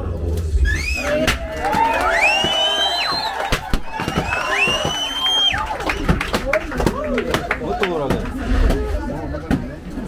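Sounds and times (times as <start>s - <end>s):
crowd cheering and clapping: 0.8s - 8.4s.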